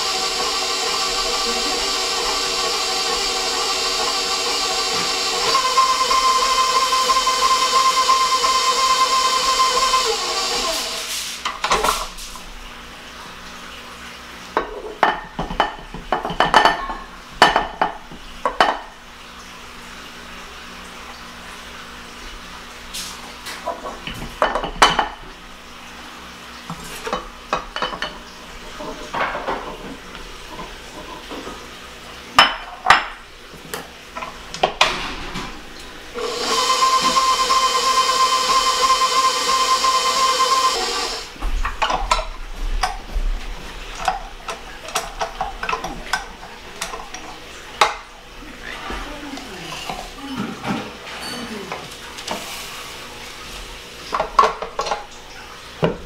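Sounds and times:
stand mixer motor whine: 0.0 - 11.0, 36.1 - 41.4.

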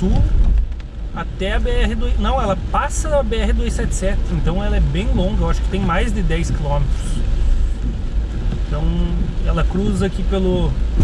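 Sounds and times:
car cabin low rumble: 0.0 - 11.0
tyres hissing on wet road: 0.9 - 11.0.

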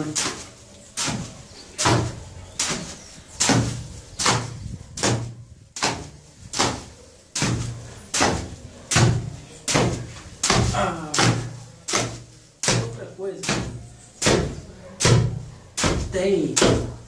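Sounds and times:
hoe scraping mortar on concrete: 0.0 - 16.9.

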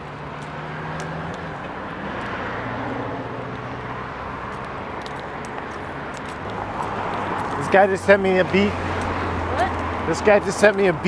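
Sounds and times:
motor vehicle passing: 0.0 - 11.0.

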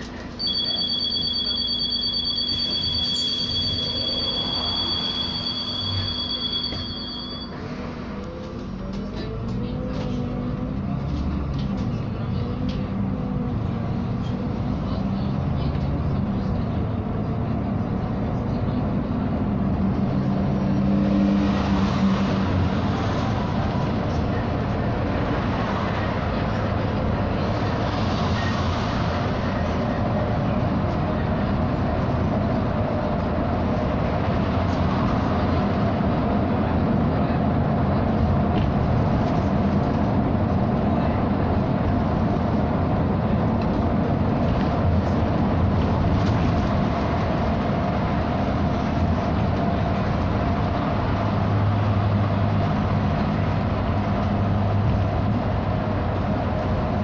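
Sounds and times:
bus cabin engine and tyre drone: 0.0 - 57.0
low engine hum: 2.8 - 57.0.

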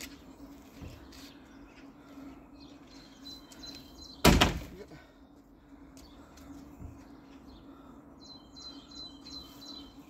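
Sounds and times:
loud slam: 4.2 - 4.7.

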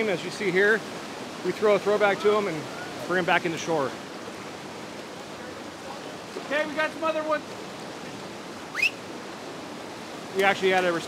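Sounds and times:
river rapids rushing: 0.0 - 11.0
whistle-like chirp: 8.7 - 9.0.

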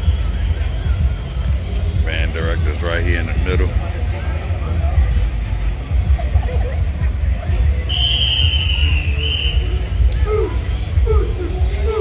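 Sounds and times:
crowd chatter: 0.0 - 12.0
steady low rumble: 0.0 - 12.0
long high whistle: 7.9 - 9.8.

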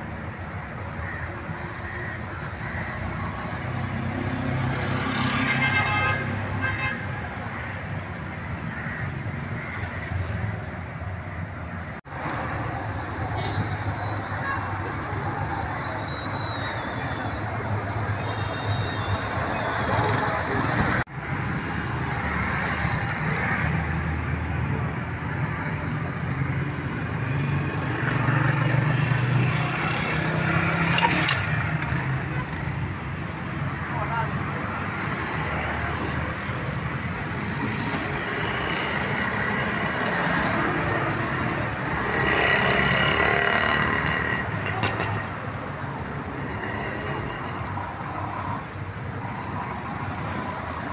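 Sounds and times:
vehicle engines passing: 0.0 - 50.9.

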